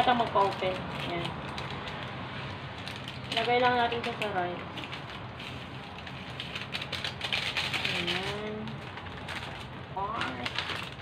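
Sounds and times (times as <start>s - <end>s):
plastic sachet rustling: 0.0s - 11.0s.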